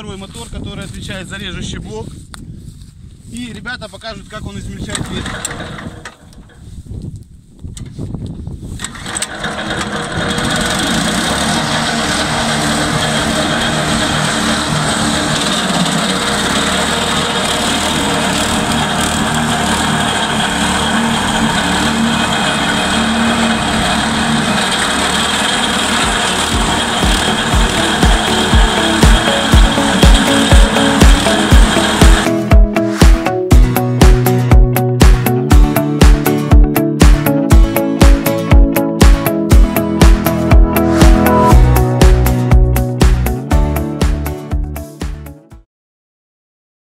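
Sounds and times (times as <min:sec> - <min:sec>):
petrol engine pull-start: 0:04.8 - 0:06.6, 0:08.8 - 0:33.2
branch chipper running: 0:05.0 - 0:06.5, 0:08.8 - 0:43.5
dance music with thumping beat: 0:25.9 - 0:45.3.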